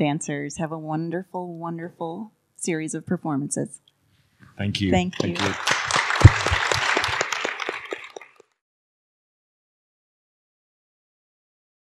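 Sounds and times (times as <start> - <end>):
audience applauding: 4.7 - 8.5.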